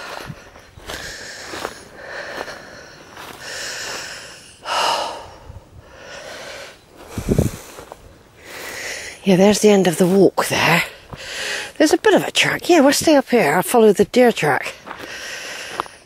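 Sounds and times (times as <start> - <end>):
person breathing hard: 0.0 - 9.2, 11.0 - 11.8, 14.9 - 16.0.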